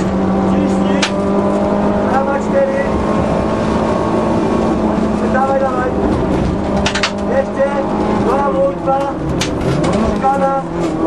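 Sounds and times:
car engine under load: 0.0 - 11.0.

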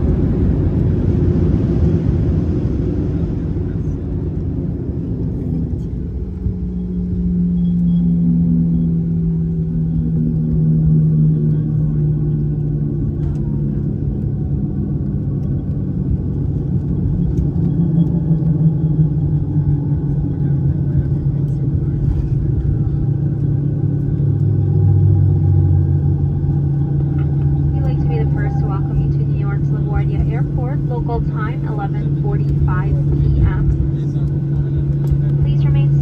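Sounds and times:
jet cabin rumble on runway: 0.0 - 36.0
cabin announcement: 27.6 - 34.0.

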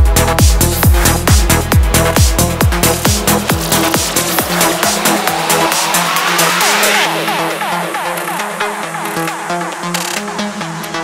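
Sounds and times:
hi-hats: 0.0 - 11.0
rising synth sweep: 0.6 - 9.8.

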